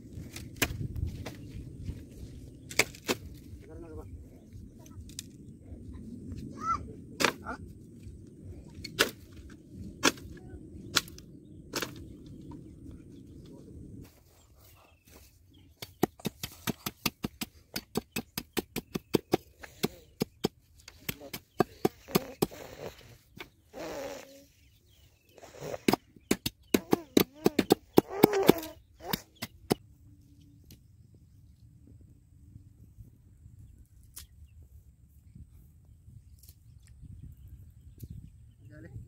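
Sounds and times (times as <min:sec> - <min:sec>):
low rumble: 0:00.0 - 0:14.8.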